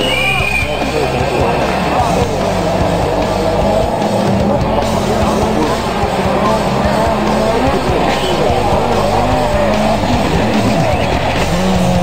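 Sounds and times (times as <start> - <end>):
rock music playing: 0.0 - 12.0
voices: 0.0 - 12.0.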